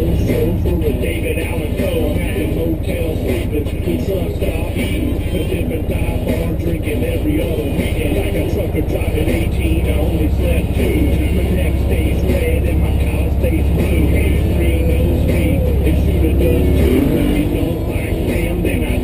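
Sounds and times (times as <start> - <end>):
atv engines idling: 0.0 - 19.0
song with singing: 0.0 - 19.0.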